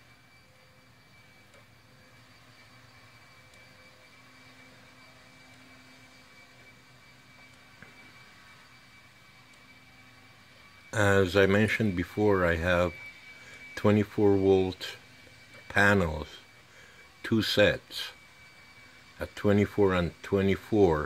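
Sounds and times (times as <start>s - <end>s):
faint machine hum with tones: 0.0s - 21.0s.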